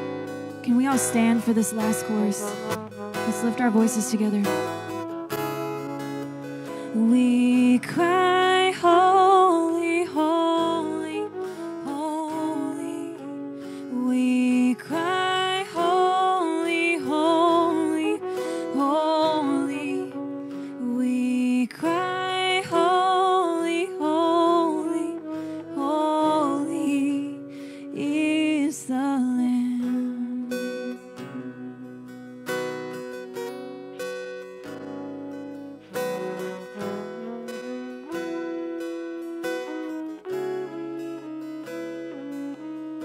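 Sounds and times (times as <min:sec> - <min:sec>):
acoustic guitar: 0:00.0 - 0:43.0
woman singing: 0:00.6 - 0:04.7, 0:06.8 - 0:32.2.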